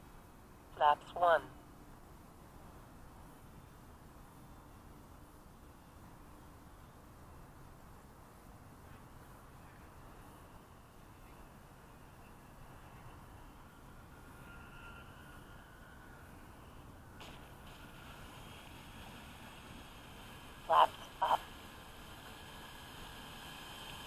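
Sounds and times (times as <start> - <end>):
distant electric model plane whine: 9.7 - 24.0.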